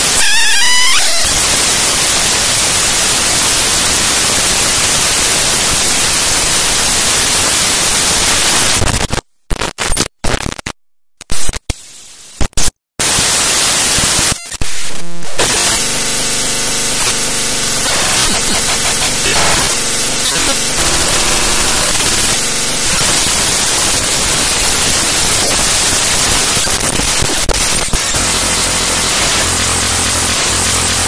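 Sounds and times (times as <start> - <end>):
buzzy steady tones: 0.0 - 9.0, 11.3 - 31.0
loud static hiss: 0.0 - 31.0.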